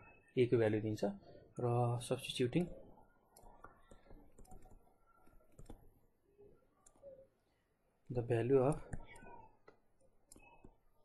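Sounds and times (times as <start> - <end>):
faint clicks and taps: 2.6 - 6.0, 8.0 - 11.0.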